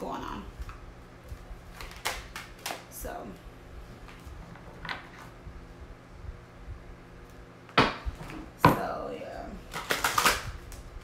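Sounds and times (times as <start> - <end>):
playing cards being shuffled: 1.7 - 2.8, 9.7 - 10.9.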